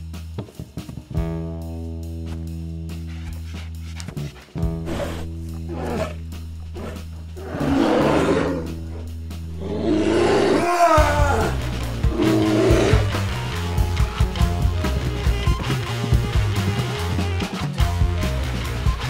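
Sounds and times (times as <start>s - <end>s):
film score with low bass: 0.0s - 19.0s
loud rough roars: 4.8s - 14.2s.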